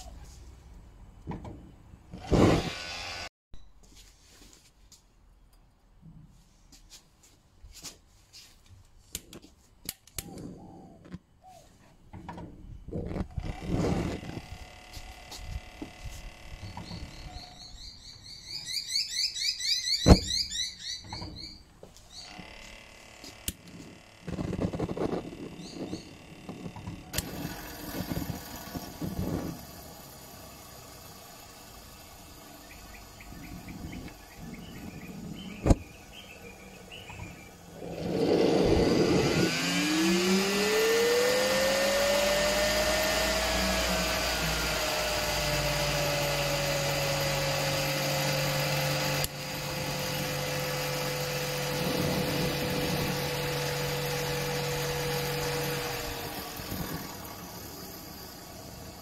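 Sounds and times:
turbine whine rising: 13.2s - 59.0s.

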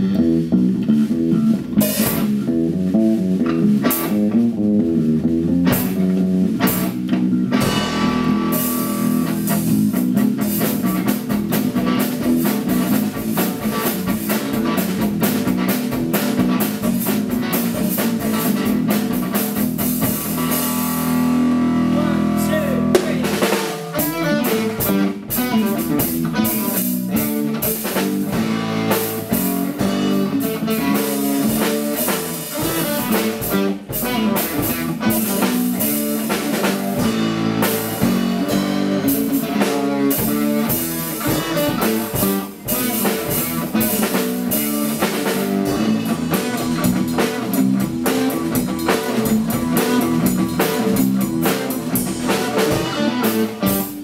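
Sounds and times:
drums keeping the beat: 0.0s - 54.0s
electric bass guitar: 0.0s - 54.0s.

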